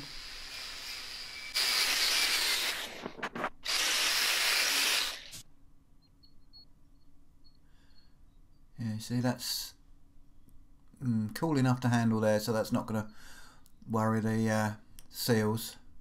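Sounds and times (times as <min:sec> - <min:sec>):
angle grinder grinding steel: 0:00.0 - 0:05.4
grinder winding down: 0:00.0 - 0:05.4.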